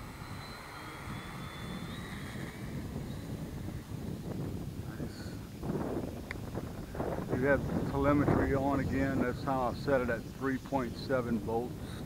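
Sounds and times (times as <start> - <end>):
model plane motor whining: 0.0 - 12.0
wind buffeting microphone: 0.0 - 12.0.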